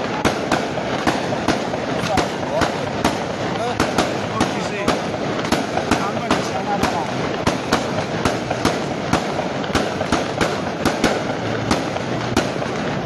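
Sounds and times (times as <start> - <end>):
crowd murmur: 0.0 - 13.0
firecrackers banging: 0.0 - 13.0.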